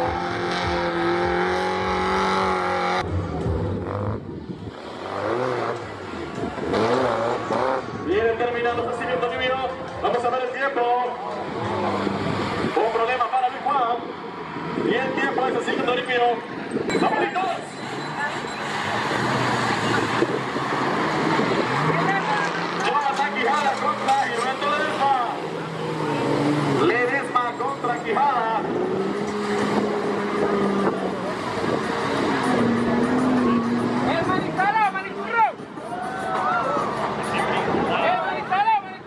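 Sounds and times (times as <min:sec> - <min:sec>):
off-road vehicle engines revving: 0:00.0 - 0:39.0
spectators shouting: 0:32.9 - 0:38.9.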